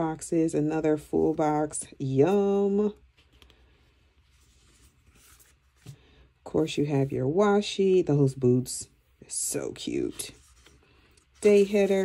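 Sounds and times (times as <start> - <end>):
rustle of paper sticker sheets: 10.0 - 12.0.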